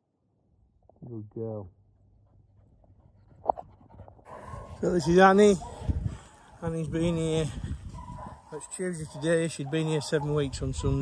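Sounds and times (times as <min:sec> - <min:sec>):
dog panting: 0:02.2 - 0:06.6.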